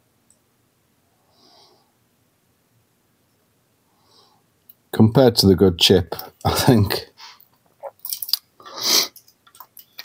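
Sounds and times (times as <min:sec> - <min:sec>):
person breathing: 0:01.2 - 0:02.0, 0:03.8 - 0:04.5, 0:07.2 - 0:07.5, 0:08.6 - 0:09.2.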